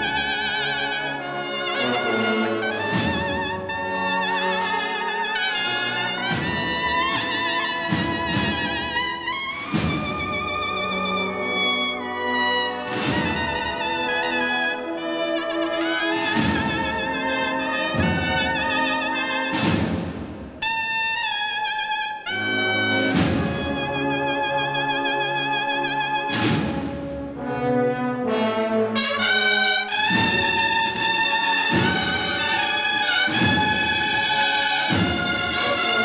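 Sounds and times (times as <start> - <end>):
bugle chords: 0.0 - 19.7, 20.6 - 26.5, 27.4 - 36.0.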